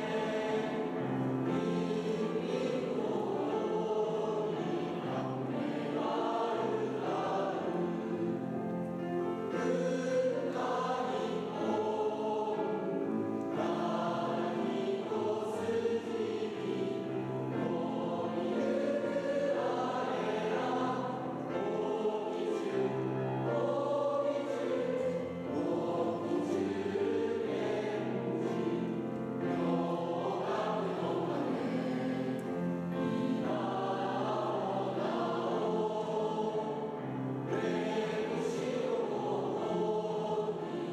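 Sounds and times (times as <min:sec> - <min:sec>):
choir singing: 0:00.0 - 0:40.9.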